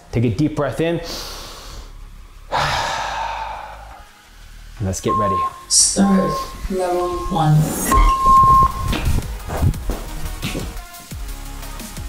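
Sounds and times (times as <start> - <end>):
man sighing: 2.5 - 4.1.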